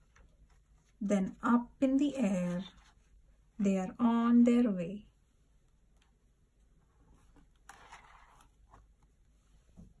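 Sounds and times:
paper rustle: 7.2 - 9.1.

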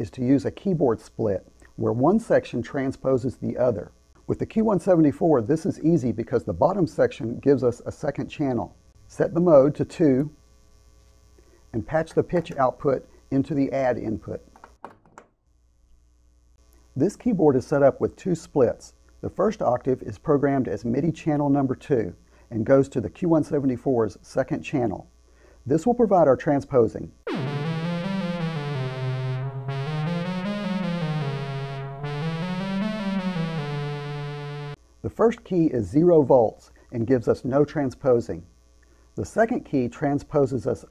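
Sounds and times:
faint electrical hum: 0.0 - 40.9
buzzy synthesizer note pattern: 27.3 - 34.8.

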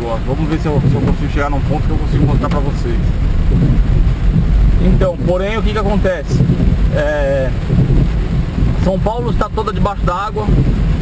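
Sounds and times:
car engine and tyres rumble: 0.0 - 11.0
rain on windshield and roof: 0.0 - 11.0.

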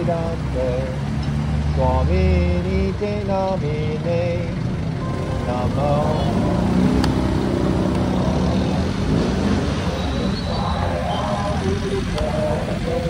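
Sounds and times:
motorcycle and car engines: 0.0 - 13.0.

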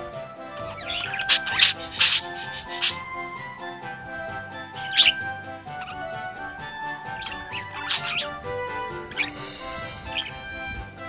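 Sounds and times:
background music: 0.0 - 11.0
budgerigar chirp: 0.5 - 3.2, 4.2 - 10.6.

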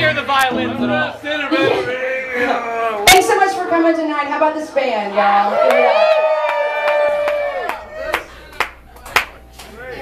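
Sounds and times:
audience clapping: 5.6 - 9.8.

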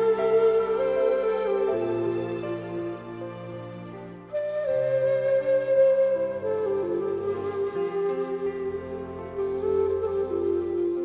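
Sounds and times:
flute playing slow melody: 0.0 - 11.0.

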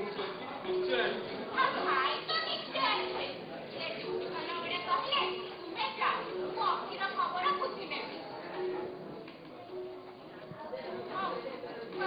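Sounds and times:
actors talking: 0.0 - 12.0.

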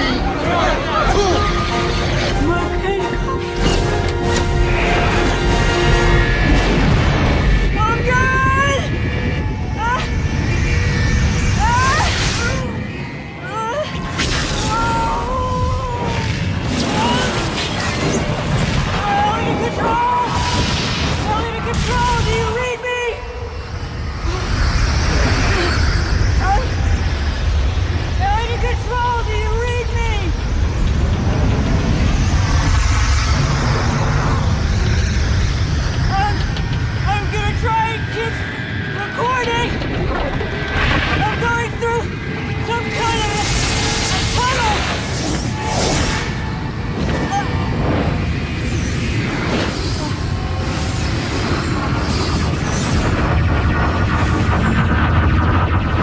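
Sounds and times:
loud rushing rumble: 0.0 - 14.4, 15.4 - 56.0.

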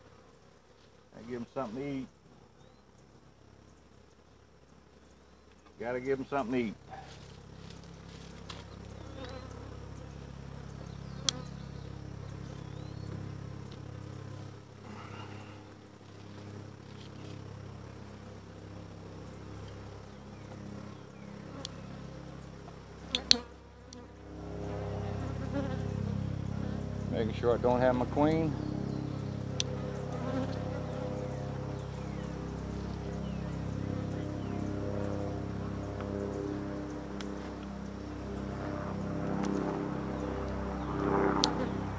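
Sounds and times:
honeybees buzzing: 0.0 - 41.9.

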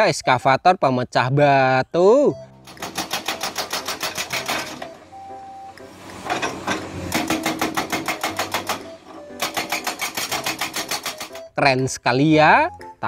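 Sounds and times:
hydraulic rock breaker hammering: 2.7 - 11.5.

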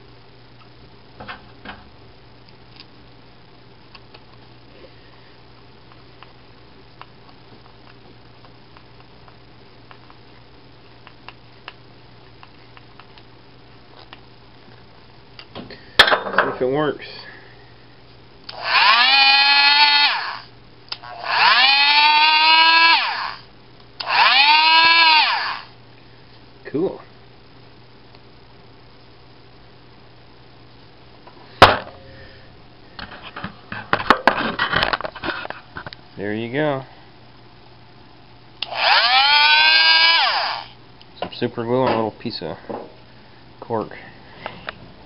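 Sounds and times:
power tool motor humming: 18.5 - 23.4, 24.0 - 25.7, 38.6 - 40.8.

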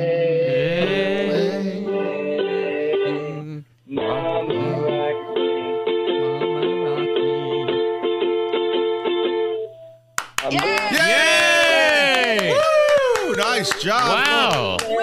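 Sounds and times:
person singing: 0.0 - 8.1.

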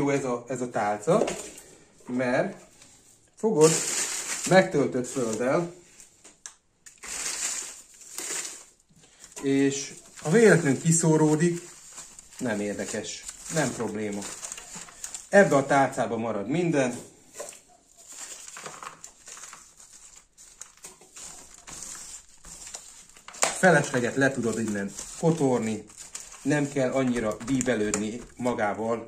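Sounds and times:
soil rustling: 7.0 - 15.6.

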